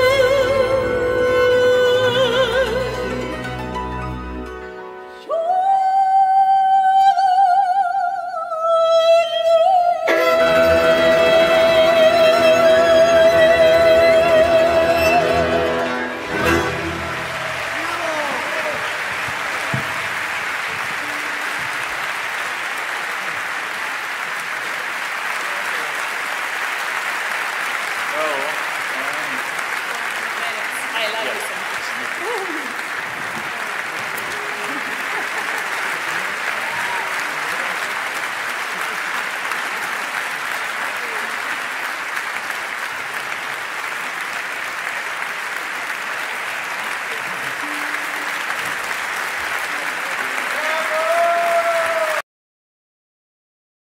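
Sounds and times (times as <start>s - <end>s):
audience applauding: 10.1s - 52.2s.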